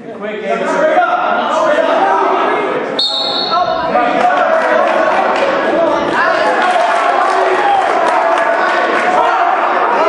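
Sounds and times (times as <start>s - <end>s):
referee's whistle blast: 3.0s - 3.8s
people shouting: 3.2s - 10.0s.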